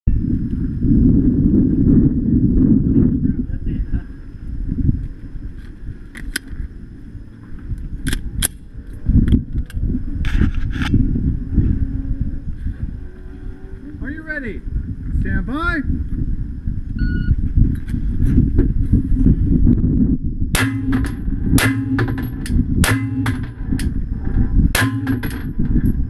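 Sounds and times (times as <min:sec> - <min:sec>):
low rumbling noise: 0:00.1 - 0:26.0
sharp clicks: 0:08.0 - 0:08.6.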